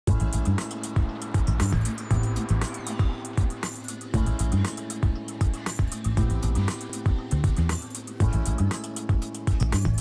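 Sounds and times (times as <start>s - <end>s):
background music with steady beat: 0.1s - 10.0s.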